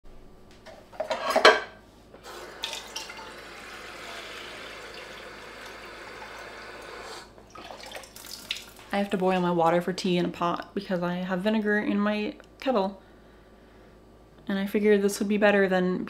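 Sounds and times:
faucet running into metal pot: 2.3 - 8.8.

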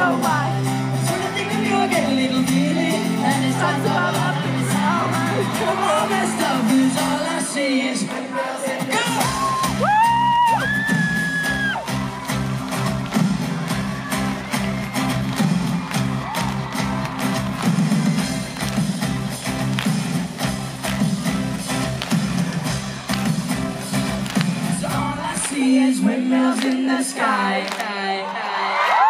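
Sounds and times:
bass guitar: 0.0 - 7.4, 8.9 - 25.6
drums: 0.0 - 26.8
crowd cries: 1.1 - 7.8, 8.4 - 18.4, 24.5 - 29.0.

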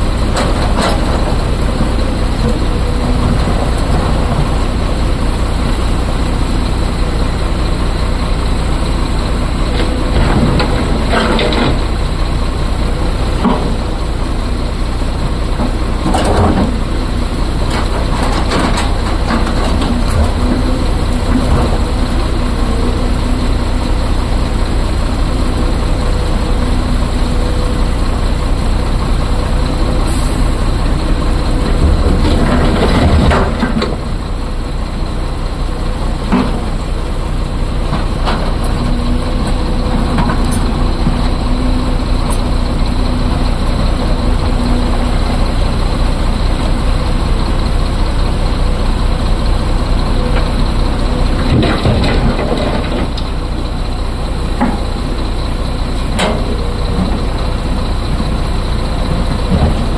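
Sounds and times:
excavator diesel engine running: 0.0 - 59.9.

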